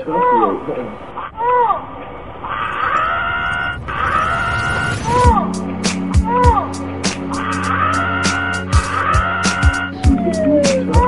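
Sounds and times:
steady pitched tone: 4.4s - 7.8s, 9.9s - 11.0s.

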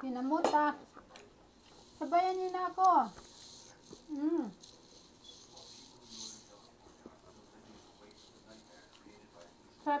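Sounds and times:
soft indistinct talking: 0.0s - 10.0s.

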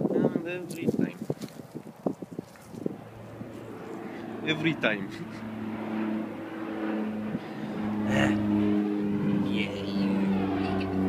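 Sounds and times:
engine humming: 2.7s - 11.0s.

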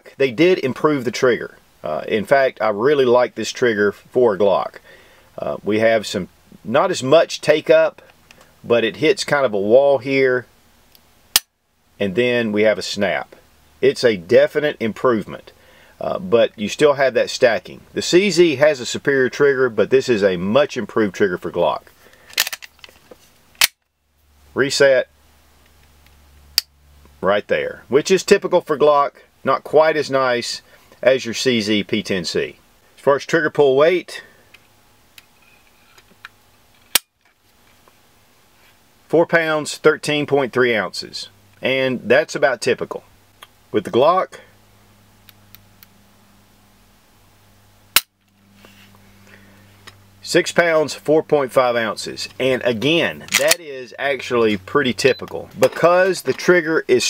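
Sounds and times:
sharp single click: 23.6s - 23.8s.

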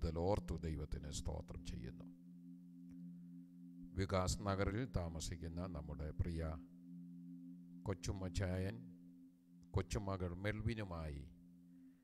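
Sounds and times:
faint low two-tone drone: 0.0s - 12.0s.

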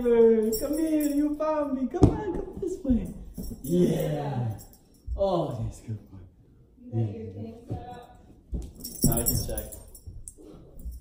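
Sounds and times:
bright metallic jingling: 0.0s - 2.0s, 2.6s - 6.1s, 8.7s - 11.0s.

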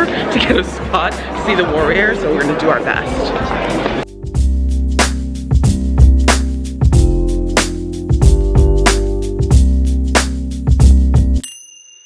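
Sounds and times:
background music: 0.0s - 11.4s.

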